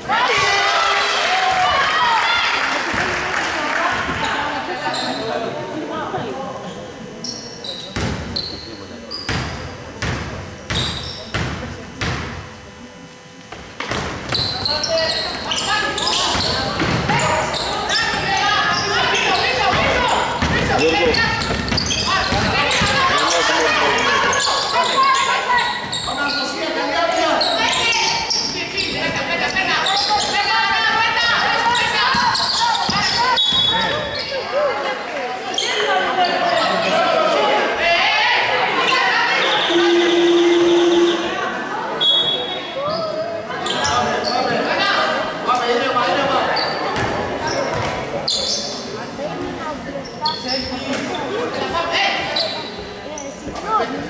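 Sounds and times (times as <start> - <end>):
basketball bouncing on hardwood floor: 19.7 - 20.7.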